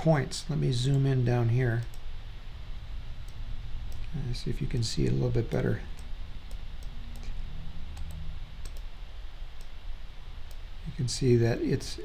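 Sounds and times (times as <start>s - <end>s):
low steady hum: 0.0s - 12.0s
computer mouse clicks: 6.0s - 8.9s.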